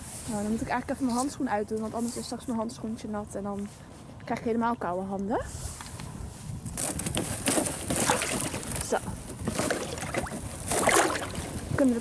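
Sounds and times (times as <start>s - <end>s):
water sloshing: 7.5s - 12.0s.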